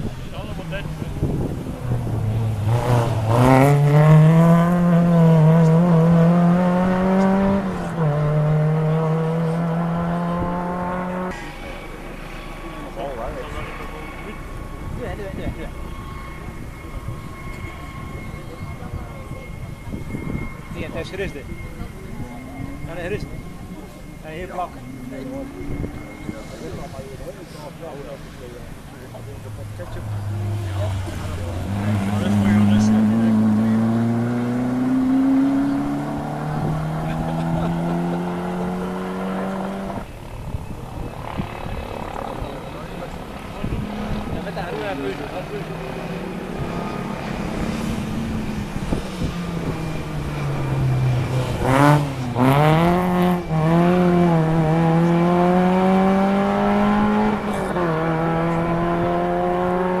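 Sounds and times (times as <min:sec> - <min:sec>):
rally car engine accelerating: 0:00.0 - 0:19.0, 0:19.8 - 1:00.0.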